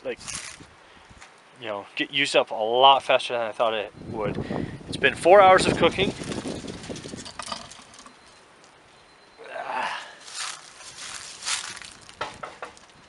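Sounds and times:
metal clinks and scrapes on cast iron: 6.1s - 8.4s.

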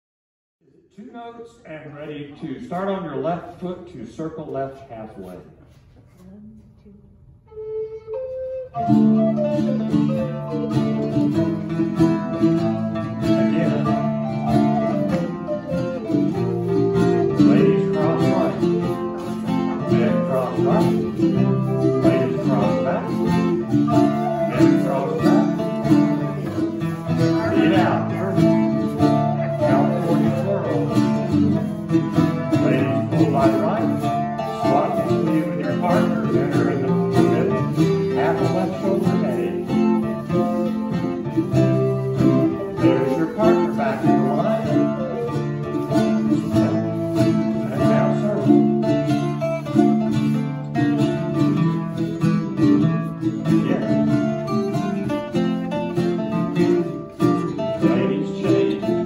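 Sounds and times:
acoustic guitar: 0.9s - 59.0s
recorder melody: 7.4s - 59.0s
bouzouki: 7.9s - 59.0s.

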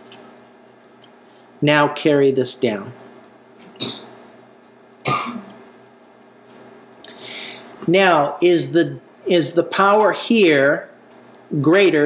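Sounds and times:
person clearing throat: 3.7s - 4.1s, 5.0s - 5.6s.

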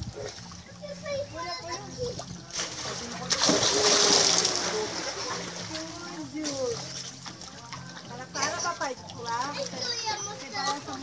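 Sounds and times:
splash of person jumping into pool: 2.5s - 5.6s.

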